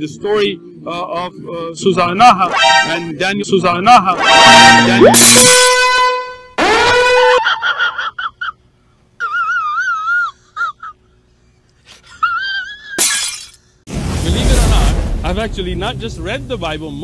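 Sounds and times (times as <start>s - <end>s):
high warbling notes: 4.1s - 6.6s
tone sliding up: 4.2s - 5.9s
crashing shattering noise: 13.0s - 15.6s.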